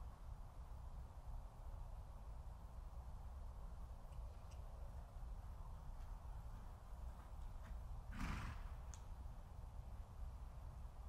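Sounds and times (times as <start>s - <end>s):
horse neighing: 8.1s - 8.7s.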